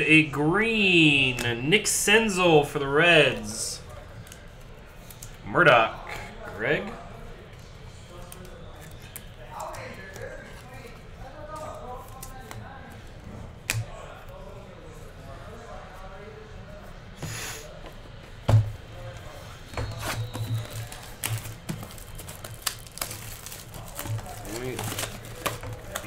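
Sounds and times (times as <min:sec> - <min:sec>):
plastic wrap crinkling: 0:19.9 - 0:26.0.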